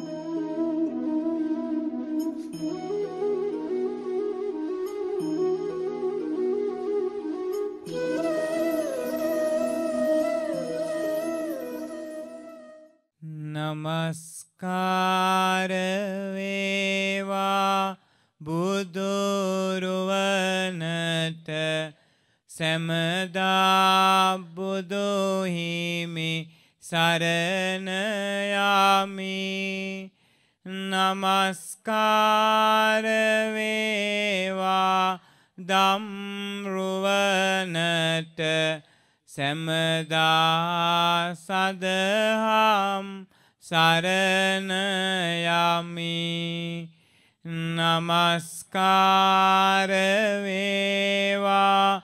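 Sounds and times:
person chanting: 30.7s - 46.9s.

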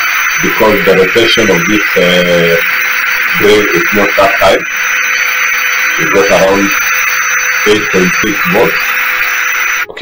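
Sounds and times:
cordless drill running: 0.0s - 10.0s
faint high whine: 0.0s - 10.0s.

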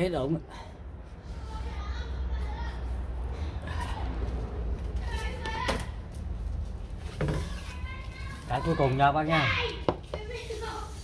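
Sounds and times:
children's voices: 1.2s - 4.4s, 7.4s - 11.0s.

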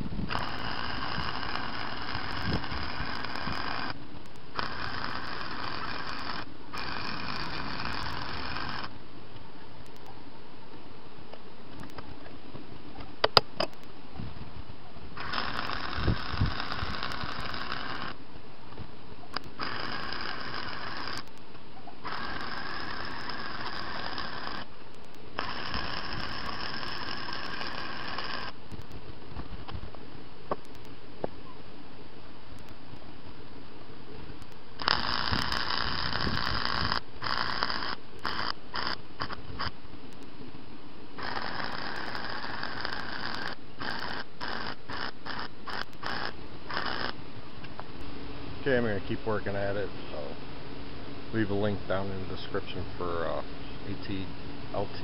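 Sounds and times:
welder arc crackling: 0.0s - 10.1s, 15.2s - 29.8s, 30.5s - 30.9s, 34.3s - 40.4s, 41.2s - 49.9s.

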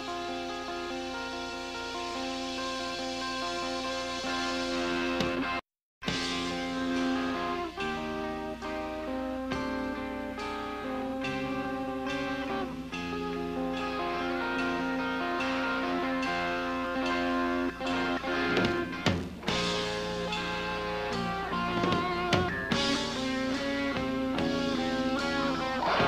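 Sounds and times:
live rock band playing: 0.0s - 26.0s
picked guitar arpeggio: 0.0s - 26.0s.

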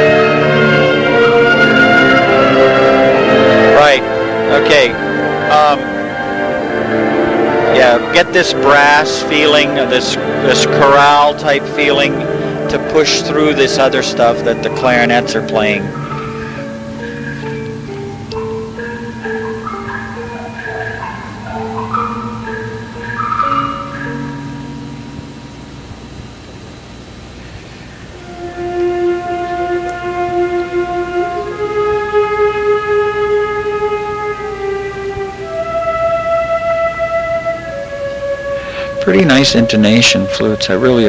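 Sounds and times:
wind ensemble playing concert-band piece: 0.0s - 26.0s, 27.8s - 41.0s.

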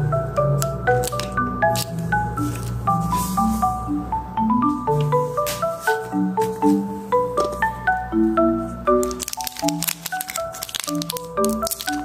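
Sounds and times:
background music: 0.0s - 12.0s
plastic wrapper crinkling: 0.9s - 2.8s, 9.0s - 12.0s.

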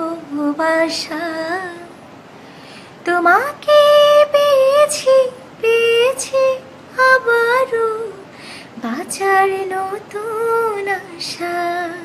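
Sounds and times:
woman singing unaccompanied: 0.0s - 2.1s, 3.0s - 12.0s.

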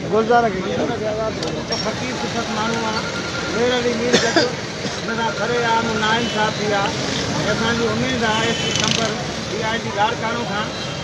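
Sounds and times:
men talking to a crowd: 0.0s - 11.0s.

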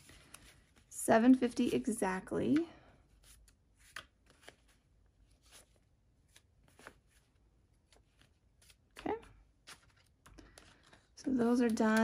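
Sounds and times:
banknotes rustling and flicking: 0.0s - 12.0s.

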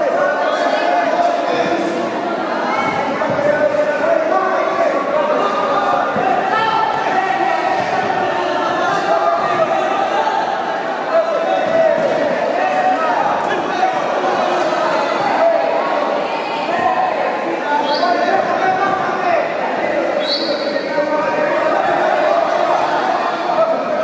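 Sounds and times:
spectators shouting and talking: 0.0s - 24.0s.

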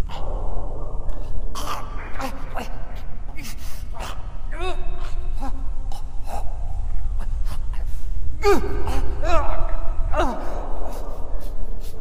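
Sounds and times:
steady low rumble: 0.0s - 12.0s
synthesizer-treated vocal sounds: 0.0s - 12.0s
wavering held moan: 0.0s - 12.0s.

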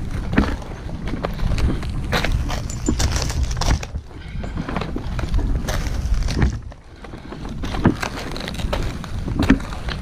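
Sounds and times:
dry palm fronds crackling: 0.0s - 10.0s
wind rumble on microphone: 0.0s - 10.0s.

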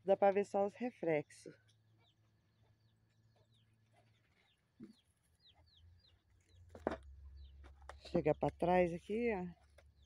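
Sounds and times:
chickens chirping: 1.7s - 8.3s.

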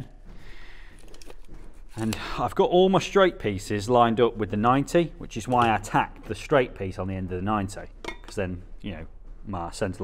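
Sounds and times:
handling metal tube pieces: 7.9s - 8.5s.

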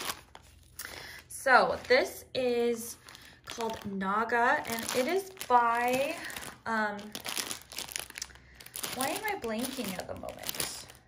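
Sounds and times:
plastic film crinkling: 0.0s - 0.8s, 2.8s - 11.0s.

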